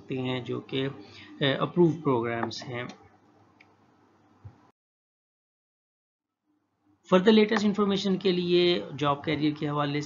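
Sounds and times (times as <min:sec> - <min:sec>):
man speaking: 0:00.0 - 0:03.0, 0:07.1 - 0:10.0.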